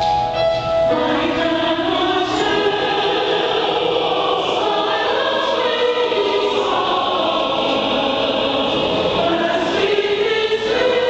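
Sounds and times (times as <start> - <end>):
mixed choir singing a hymn: 0.9 - 11.0.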